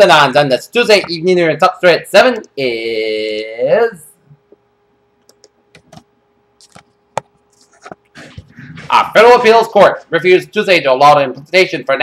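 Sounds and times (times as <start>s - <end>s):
faint steady hum: 0.0s - 12.0s
person speaking: 7.6s - 12.0s.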